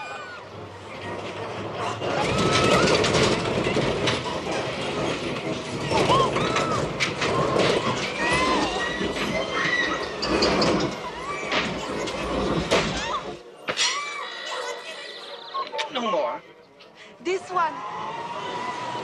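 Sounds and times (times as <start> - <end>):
steady clattering: 0.6 - 13.4.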